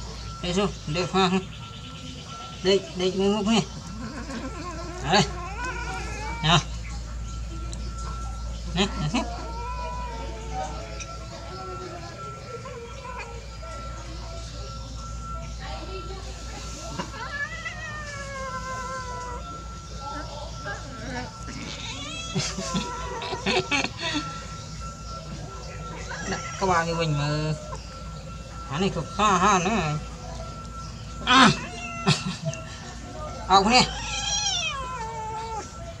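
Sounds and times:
cat meowing: 4.1 - 6.8, 9.0 - 11.1, 17.0 - 19.8, 21.6 - 23.4, 31.5 - 32.4, 33.7 - 35.8
kitten meowing: 21.6 - 22.4, 31.5 - 32.2, 33.8 - 35.7.

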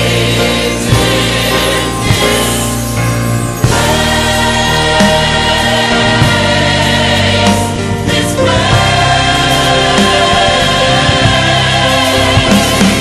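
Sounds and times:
choir singing gospel: 0.0 - 13.0
instrumental accompaniment: 0.0 - 13.0.

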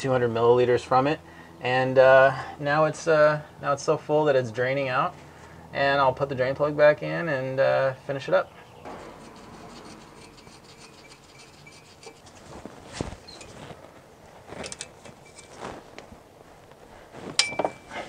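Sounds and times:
metal clinks: 17.3 - 18.0.

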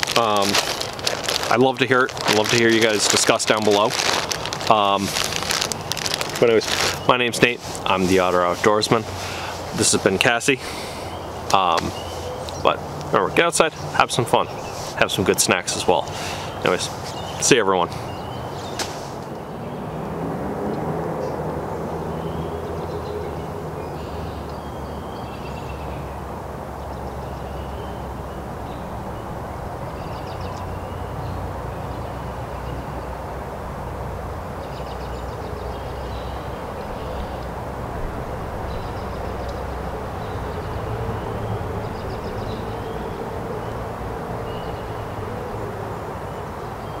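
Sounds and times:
distant engine rumble: 0.0 - 47.0.

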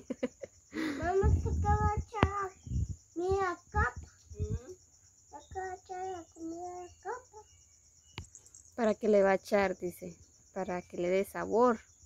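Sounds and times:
high insect chirring: 0.0 - 12.0
child singing: 1.1 - 7.5.

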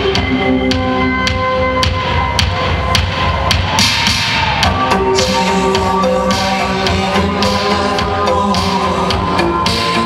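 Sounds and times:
held synthesizer chords: 0.0 - 10.0
steady drum beat: 0.0 - 10.0.

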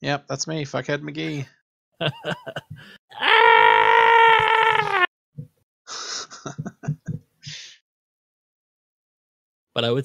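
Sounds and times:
person's long high-pitched cry: 3.1 - 5.1.

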